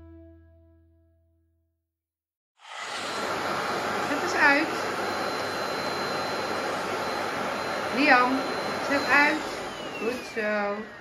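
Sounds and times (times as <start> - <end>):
vacuum cleaner running: 2.6 - 11.0.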